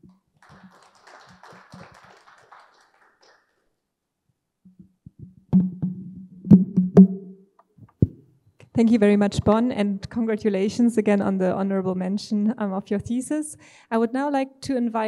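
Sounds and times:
audience applause: 0:00.4 - 0:03.6
knocks and thumps: 0:04.7 - 0:08.2.

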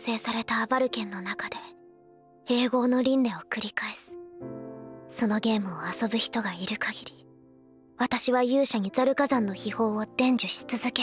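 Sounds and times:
woman speaking: 0:00.0 - 0:01.7, 0:02.5 - 0:04.2, 0:05.1 - 0:07.2, 0:08.0 - 0:11.0.

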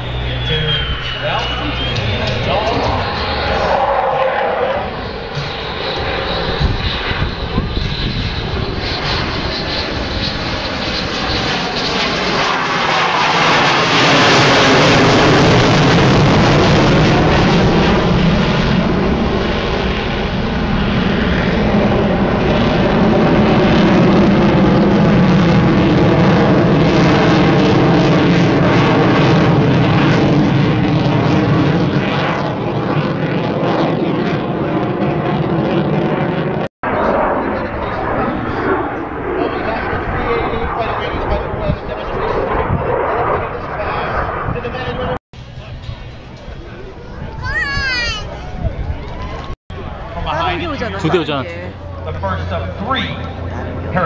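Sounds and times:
fighter jet roar overhead: 0:00.0 - 0:54.0.

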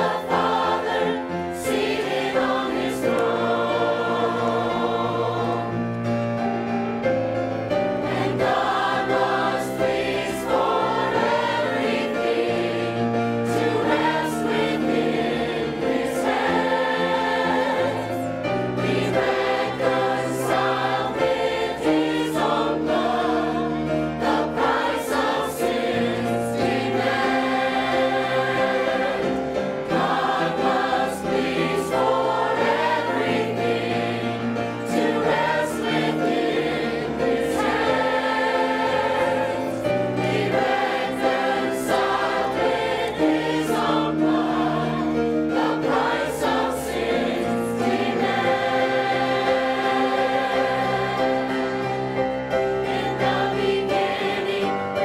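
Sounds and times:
mixed choir singing: 0:00.0 - 0:06.4, 0:07.6 - 0:55.0.

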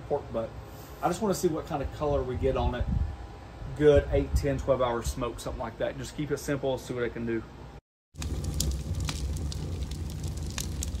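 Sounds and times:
fire crackling and rumbling: 0:08.2 - 0:11.0.

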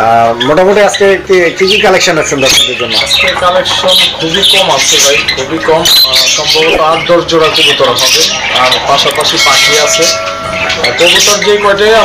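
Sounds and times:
man speaking: 0:00.0 - 0:10.2, 0:10.8 - 0:12.0
caged birds squawking and chirping: 0:00.0 - 0:12.0.

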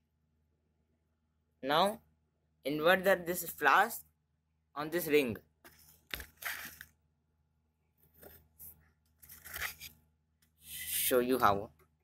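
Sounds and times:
scraping and rustling handling noise: 0:05.6 - 0:07.0, 0:08.0 - 0:10.0.

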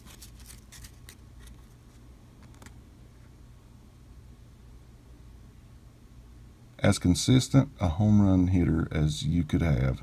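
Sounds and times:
card handling ticks and rustles: 0:00.0 - 0:02.8.

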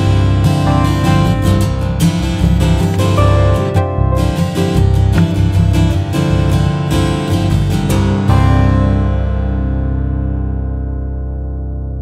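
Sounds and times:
acoustic guitar chord ringing: 0:00.0 - 0:12.0
acoustic guitar picked notes: 0:00.0 - 0:12.0.

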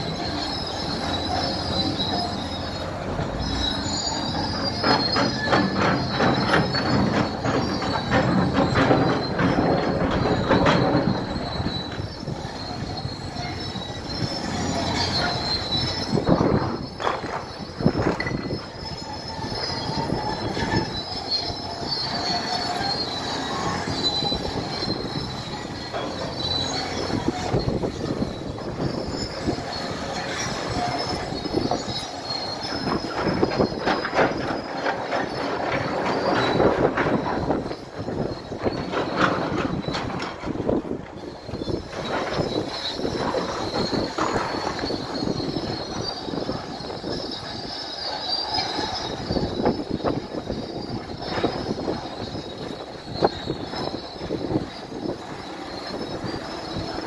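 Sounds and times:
steel tracks squealing and clanking: 0:00.0 - 0:57.0.

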